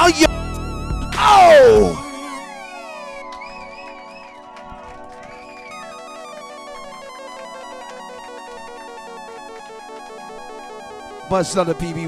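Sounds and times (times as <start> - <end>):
held chords: 0.0 - 12.0.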